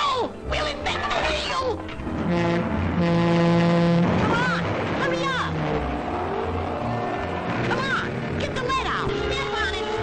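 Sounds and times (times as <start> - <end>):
low train horn blasts: 2.1 - 4.6, 9.0 - 10.0.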